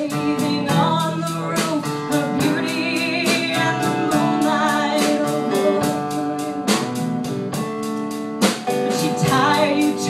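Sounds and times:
woman singing: 0.0s - 7.1s, 8.7s - 10.0s
regular beat: 0.0s - 10.0s.

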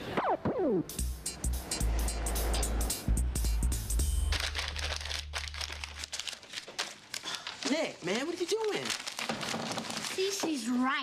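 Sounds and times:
paper crumpling: 4.2s - 10.9s.

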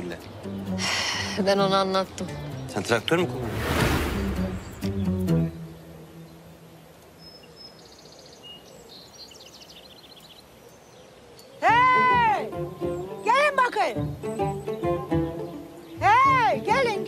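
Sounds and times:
faint birds chirping: 0.0s - 17.0s
woman calling out: 11.6s - 12.6s, 16.0s - 17.0s.

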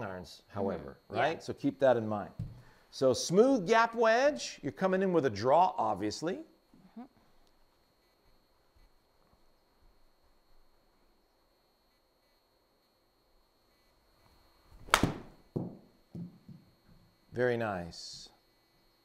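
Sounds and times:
golf club striking ball: 14.8s - 16.3s.

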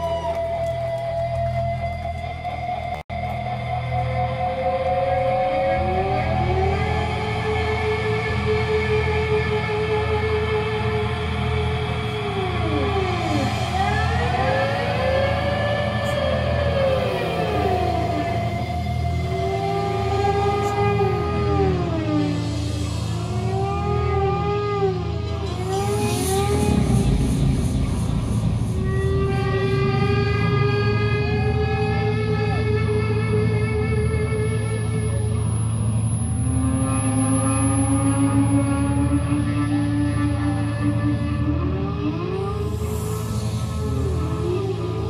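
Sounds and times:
rock band droning: 0.0s - 45.0s
low rumble: 9.4s - 31.6s
siren-like pitch swoops: 10.1s - 30.7s.

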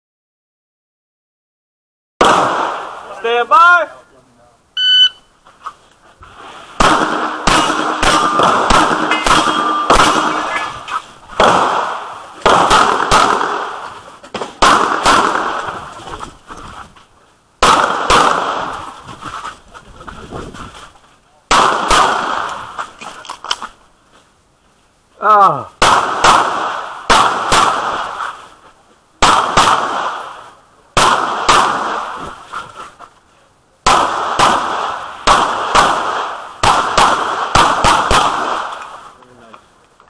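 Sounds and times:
pistol shots echoing: 2.2s - 3.1s, 6.8s - 14.0s, 14.6s - 15.7s, 17.6s - 18.8s, 21.5s - 22.6s, 25.8s - 28.2s, 29.2s - 30.3s, 31.0s - 32.2s, 33.8s - 38.9s
shot timer beep: 4.8s - 5.3s.

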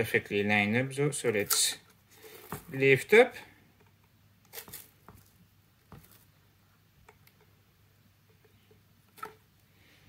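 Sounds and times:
hands rustling tape: 1.3s - 2.8s, 3.8s - 6.4s.

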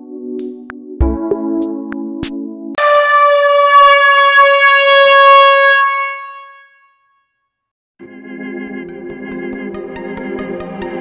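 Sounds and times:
loud horn blast: 2.8s - 7.0s.

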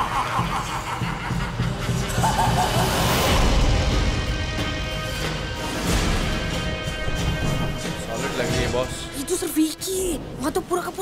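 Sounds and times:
man laughing: 0.0s - 3.4s.

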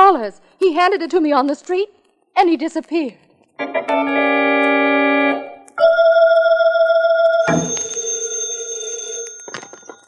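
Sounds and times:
telephone bell ringing: 5.8s - 10.0s.

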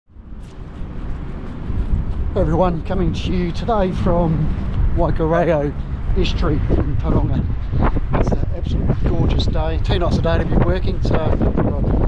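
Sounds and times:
wind buffeting microphone: 0.1s - 12.0s.

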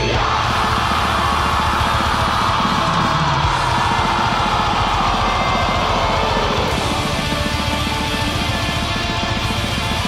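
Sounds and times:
distorted guitars: 0.0s - 10.0s
rapid drumming: 0.0s - 10.0s.

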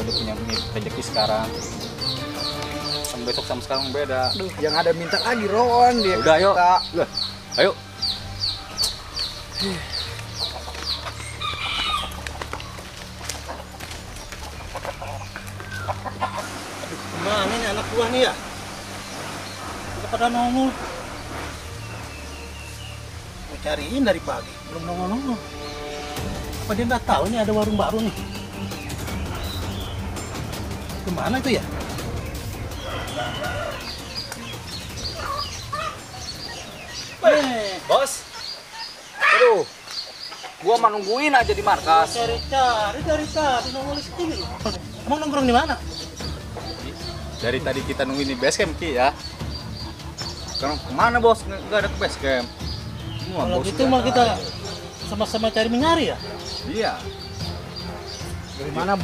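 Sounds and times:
chickens chirping: 0.0s - 59.0s
rooster crowing: 4.9s - 6.6s, 11.2s - 12.3s, 32.8s - 34.4s.

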